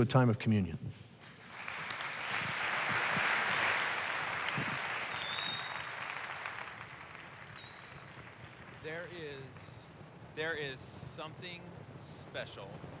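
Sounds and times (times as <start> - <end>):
audience applauding: 1.3 - 9.8.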